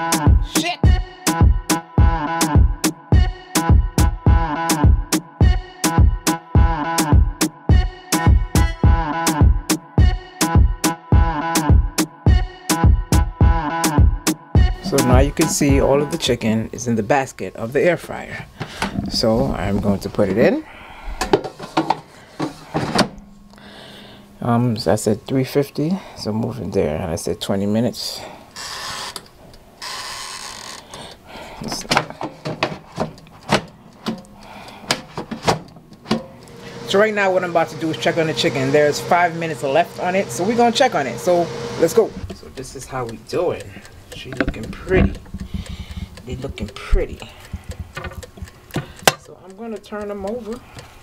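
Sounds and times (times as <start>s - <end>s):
plastic clicks and knocks: 31.8s - 34.3s, 44.3s - 46.2s, 47.5s - 49.3s
air fryer basket clunk: 34.9s - 36.4s
metal fork clicking on basket: 42.3s - 50.8s
plastic knocks and scrapes: 47.6s - 48.9s.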